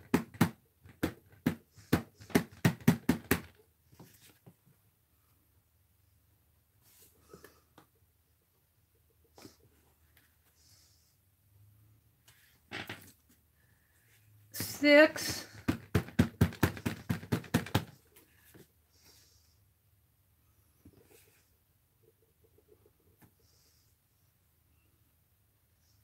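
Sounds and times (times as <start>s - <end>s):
faint handling sounds: 3.8s - 5.4s, 18.0s - 19.6s.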